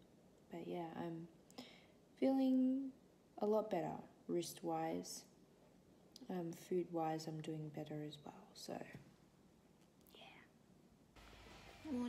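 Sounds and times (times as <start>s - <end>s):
person whispering a word: 10.1s - 10.5s.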